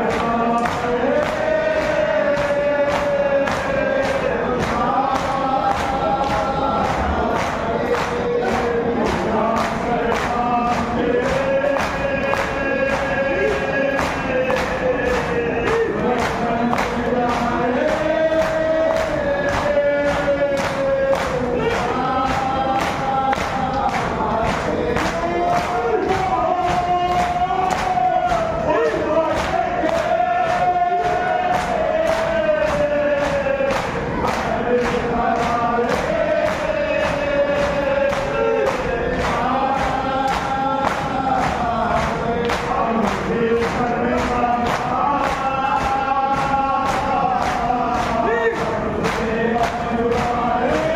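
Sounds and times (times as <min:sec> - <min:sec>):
crowd of men chanting: 0:00.0 - 0:50.9
rhythmic chest-beating: 0:00.0 - 0:50.9.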